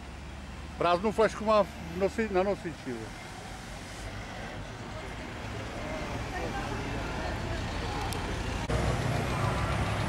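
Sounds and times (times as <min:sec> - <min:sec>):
cars driving past: 0:00.0 - 0:10.0
lorry engine rumble: 0:00.0 - 0:10.0.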